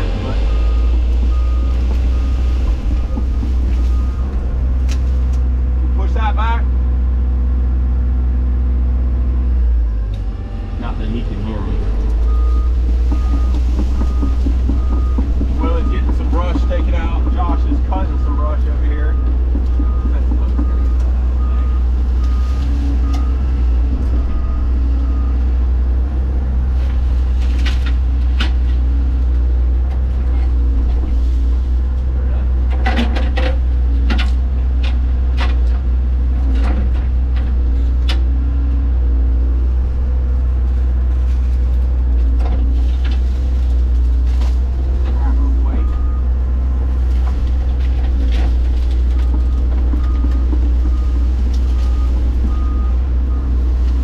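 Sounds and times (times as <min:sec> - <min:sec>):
excavator diesel engine running: 0:00.0 - 0:54.0
branches cracking and snapping: 0:00.9 - 0:05.5, 0:11.8 - 0:38.3, 0:40.3 - 0:45.2, 0:46.6 - 0:54.0
travel alarm beeping: 0:12.2 - 0:23.5.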